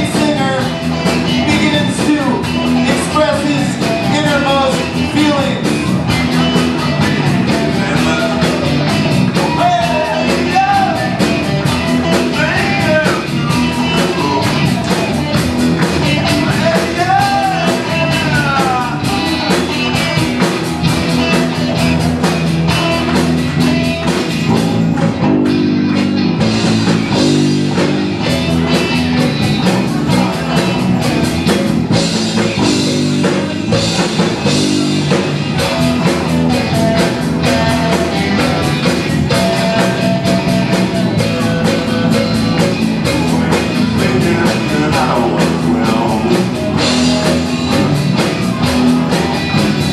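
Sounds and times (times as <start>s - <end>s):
live rock band playing: 0.0s - 49.9s.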